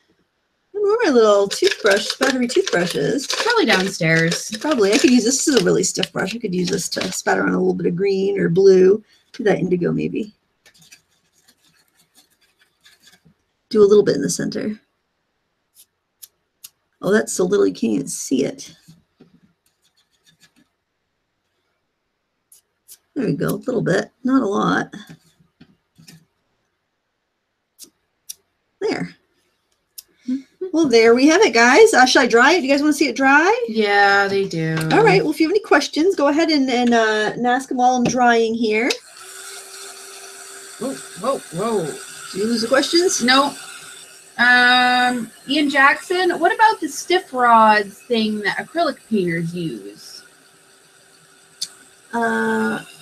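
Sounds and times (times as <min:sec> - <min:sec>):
electric dryer blowing: 0:01.0 - 0:07.6, 0:38.7 - 0:50.2.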